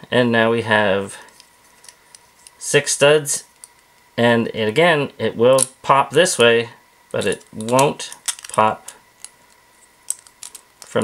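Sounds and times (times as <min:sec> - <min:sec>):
plastic bricks clicking together: 0:10.1 - 0:11.0.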